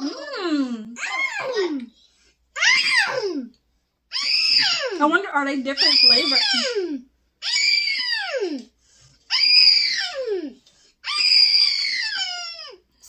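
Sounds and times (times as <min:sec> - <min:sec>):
high-pitched vocal squeals: 0:00.0 - 0:01.9, 0:02.6 - 0:03.5, 0:04.1 - 0:05.0, 0:05.8 - 0:08.7, 0:09.3 - 0:12.8.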